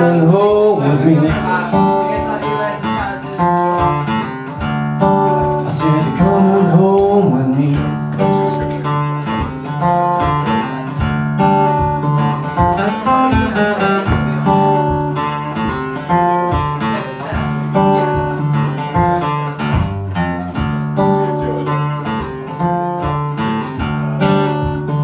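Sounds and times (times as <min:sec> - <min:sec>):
acoustic guitar strumming and picking: 0:00.0 - 0:25.0.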